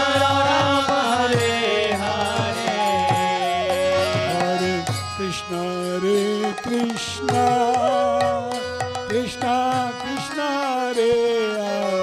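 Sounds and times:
harmonium melody: 0:00.0 - 0:12.0
man singing a chant: 0:00.0 - 0:12.0.

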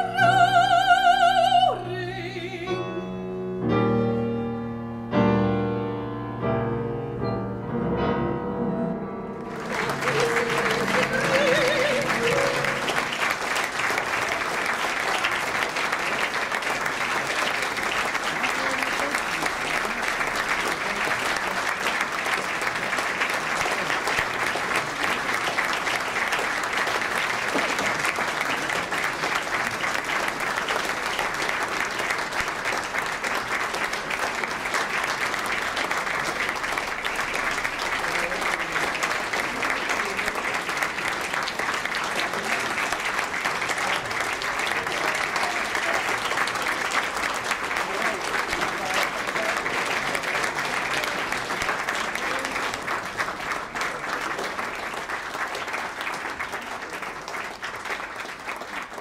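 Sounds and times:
audience applauding: 0:09.4 - 0:59.0.

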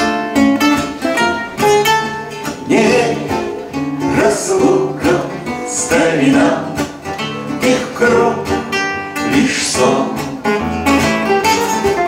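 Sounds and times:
acoustic guitars playing: 0:00.0 - 0:12.0
people singing: 0:02.4 - 0:10.7.

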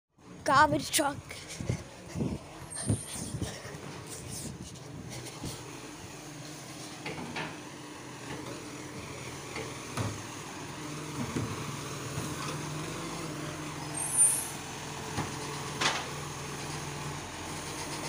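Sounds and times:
diesel truck engine running: 0:00.2 - 0:18.0
air-brake hiss: 0:14.0 - 0:14.6.

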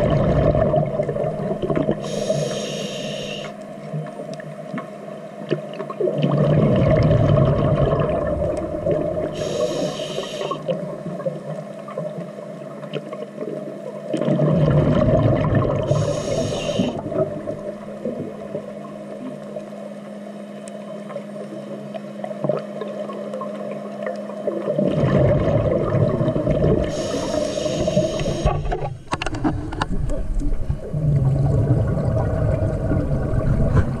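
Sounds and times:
underwater exhaled air bubbling: 0:00.0 - 0:04.5, 0:05.7 - 0:19.7, 0:21.0 - 0:34.0
regulator hiss: 0:02.0 - 0:03.6, 0:09.2 - 0:10.7, 0:15.9 - 0:17.1, 0:26.8 - 0:28.8.

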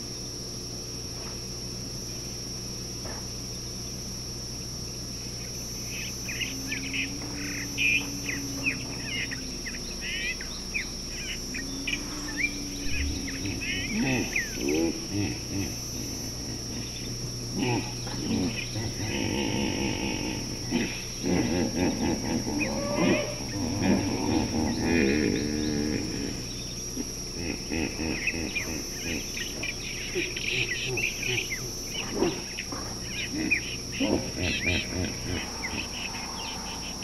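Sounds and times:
faint high-pitched whine: 0:00.0 - 0:37.0
insects droning: 0:00.0 - 0:37.0
birds chirping: 0:04.6 - 0:37.0
camels moaning: 0:11.6 - 0:37.0.

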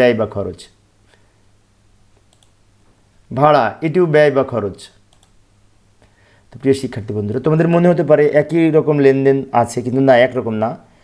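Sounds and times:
low steady hum: 0:00.0 - 0:11.0
computer mouse clicks: 0:02.2 - 0:02.6, 0:05.1 - 0:05.4.

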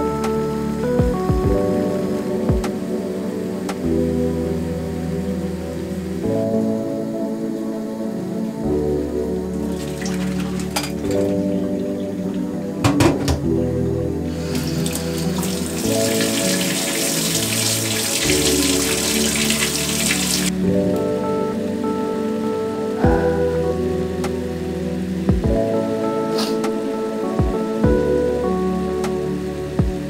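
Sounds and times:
background music: 0:00.0 - 0:30.0
tap water running into sink: 0:14.5 - 0:20.5.

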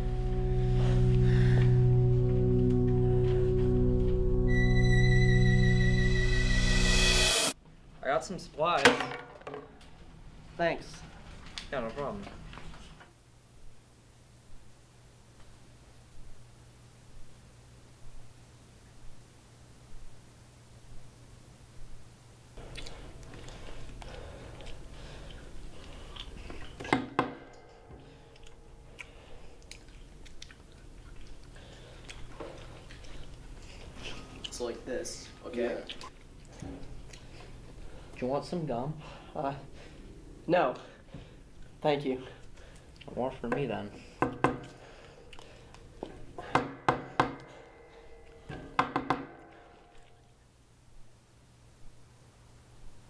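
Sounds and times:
sharp ringing knocks: 0:46.4 - 0:49.7.

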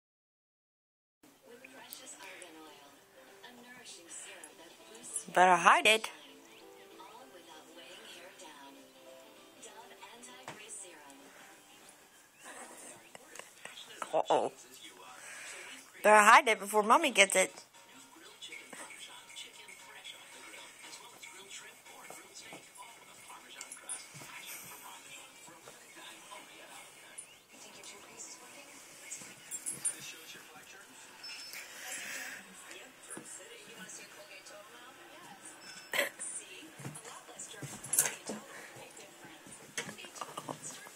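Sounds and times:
faint whispering: 0:11.1 - 0:16.0.

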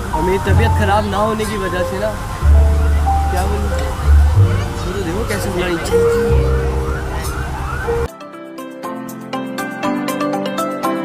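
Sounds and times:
bass-heavy track: 0:00.0 - 0:08.1
soft music with sustained notes: 0:00.0 - 0:11.0
wailing siren-like sound: 0:02.4 - 0:08.1.

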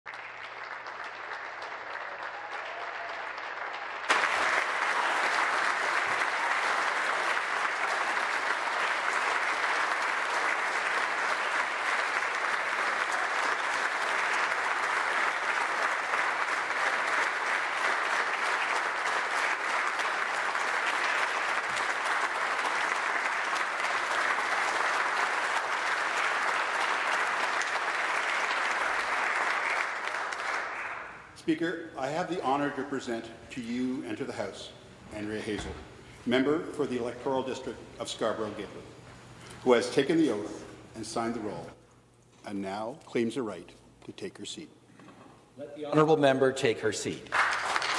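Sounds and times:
people applauding: 0:00.1 - 0:31.3, 0:47.3 - 0:47.9.

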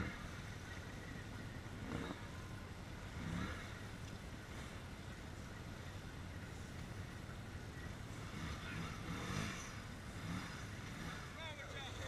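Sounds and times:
engine running low: 0:00.0 - 0:12.0.

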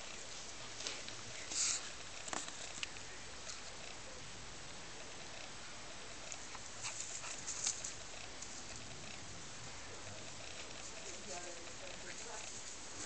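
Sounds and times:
animals scuffling on grass: 0:00.0 - 0:03.9, 0:06.1 - 0:13.0
steady background hiss: 0:00.0 - 0:13.0.

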